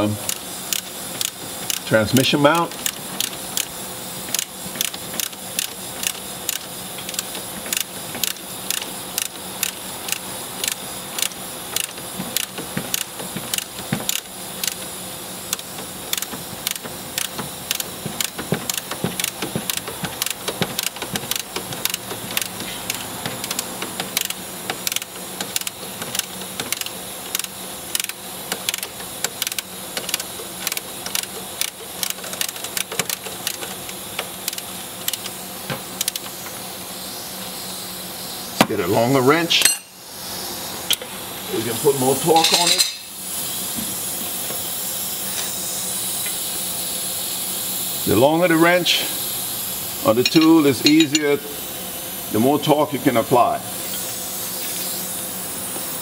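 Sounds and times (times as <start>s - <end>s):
ratcheting wrench clicking: 0.2s - 35.4s, 36.0s - 36.5s.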